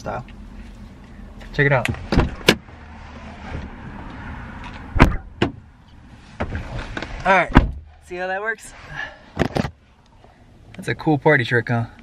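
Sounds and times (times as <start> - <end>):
car door clunks and thuds: 1.8 - 2.7, 4.7 - 5.7, 6.3 - 8.0.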